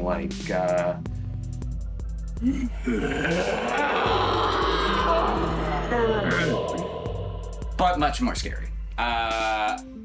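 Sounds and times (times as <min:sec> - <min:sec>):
background music: 0:00.0 - 0:10.0
person imitating a scream: 0:02.4 - 0:07.8.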